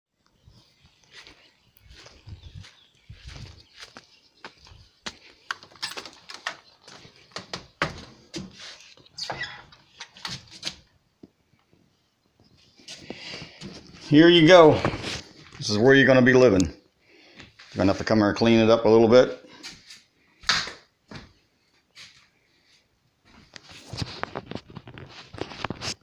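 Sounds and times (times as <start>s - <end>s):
wooden screen door rattling: 5.6s - 8.6s, 9.2s - 10.9s.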